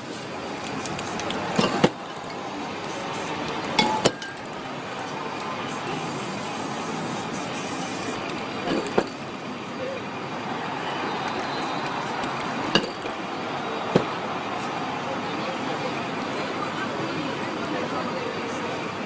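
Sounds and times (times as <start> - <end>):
spray can hissing: 0.0 - 1.6, 2.8 - 3.7, 5.7 - 8.4.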